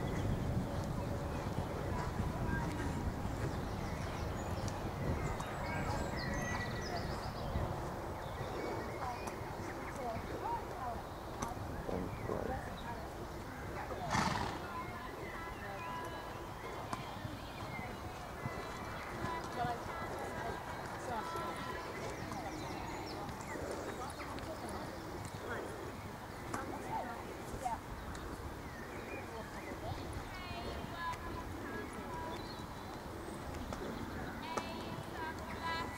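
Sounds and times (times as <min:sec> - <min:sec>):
faint voices: 0:00.0 - 0:35.9
horse hooves on sand: 0:00.0 - 0:35.9.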